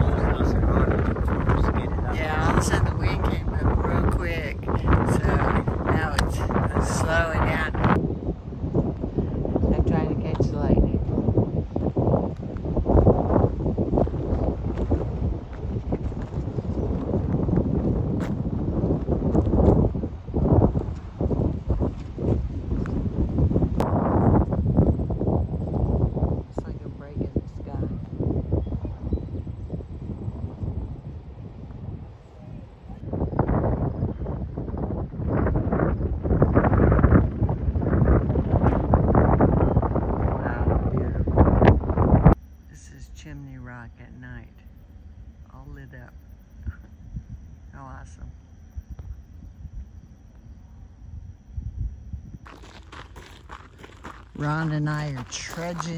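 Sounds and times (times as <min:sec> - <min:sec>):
gusty wind buffeting microphone: 0:00.0 - 0:55.9.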